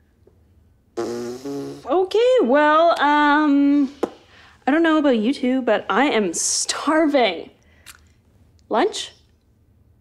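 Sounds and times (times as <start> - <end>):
loud buzzing fart: 1.0 - 2.0.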